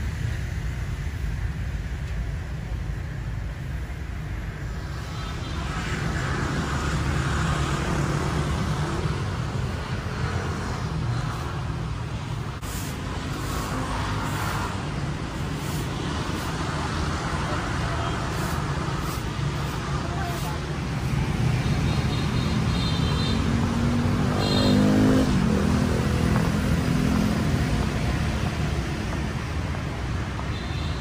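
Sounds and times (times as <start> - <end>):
road traffic rumble: 0.0 - 31.0
vehicle passing by: 4.8 - 30.0.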